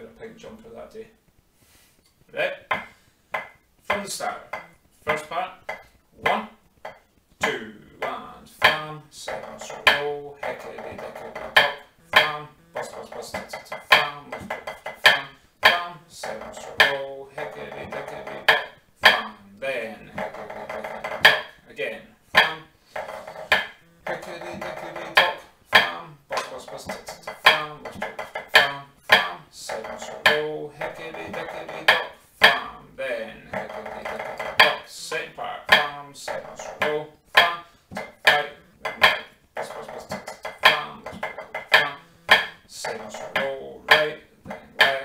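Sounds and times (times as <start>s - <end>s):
drumsticks on practice pad: 2.6s - 45.0s
sustained backing music: 3.7s - 45.0s.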